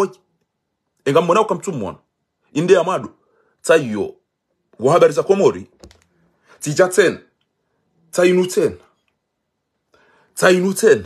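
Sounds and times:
man speaking: 0:00.0 - 0:00.2, 0:01.1 - 0:04.2, 0:04.8 - 0:05.7, 0:06.6 - 0:07.3, 0:08.1 - 0:08.8, 0:10.4 - 0:11.0.

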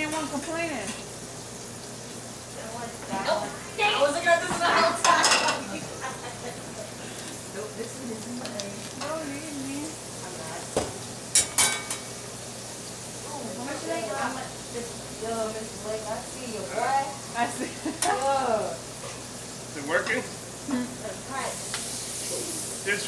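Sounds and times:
metal utensils clattering on pans: 0:00.0 - 0:01.1, 0:04.5 - 0:05.8, 0:11.3 - 0:12.2
food sizzling in pans: 0:00.0 - 0:23.0.

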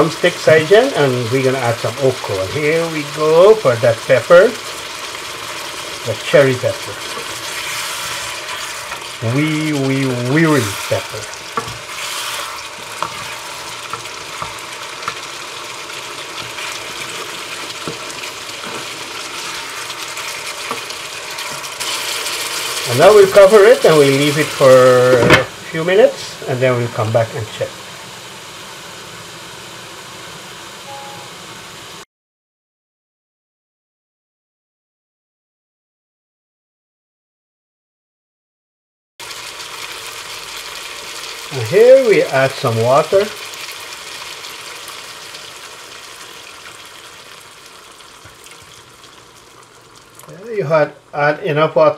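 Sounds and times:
food sizzling in a frying pan: 0:00.0 - 0:32.0, 0:39.2 - 0:51.9
wooden spoon stirring: 0:05.4 - 0:24.6.

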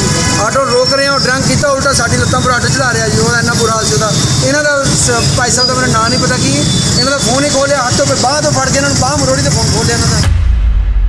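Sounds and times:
street traffic: 0:00.0 - 0:10.3
man speaking: 0:00.3 - 0:10.3.

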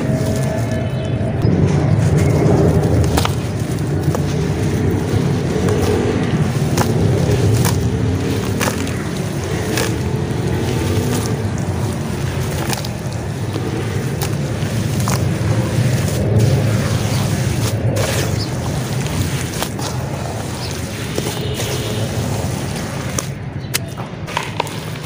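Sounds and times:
mud squishing in water: 0:00.0 - 0:25.0
sharp crackles: 0:00.0 - 0:25.0
steady low rumble: 0:00.0 - 0:25.0.

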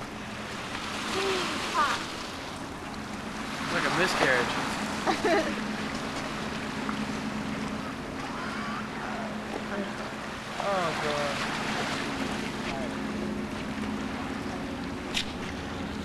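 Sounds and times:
steady low hum: 0:00.0 - 0:16.0
water: 0:00.0 - 0:16.0.

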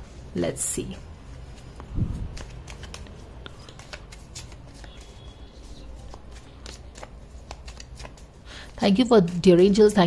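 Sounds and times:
cards being shuffled by hand: 0:01.3 - 0:09.4.

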